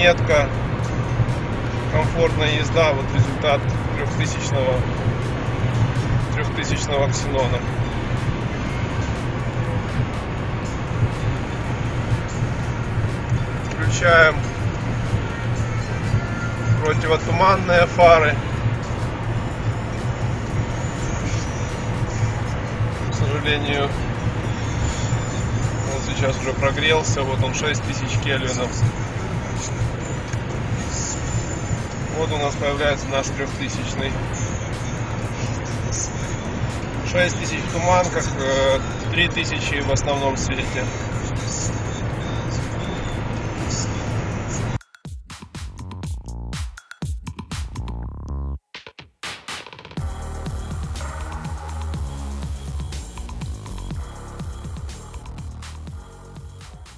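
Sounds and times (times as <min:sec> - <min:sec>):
man speaking: 0:00.0 - 0:00.6, 0:01.9 - 0:04.9, 0:06.3 - 0:07.7, 0:13.7 - 0:14.6, 0:16.7 - 0:18.6, 0:23.0 - 0:24.1, 0:25.8 - 0:29.8, 0:32.1 - 0:34.3, 0:37.1 - 0:41.8
car interior drone: 0:00.0 - 0:44.8, 0:50.0 - 0:56.9
background music with steady beat: 0:00.0 - 0:56.9.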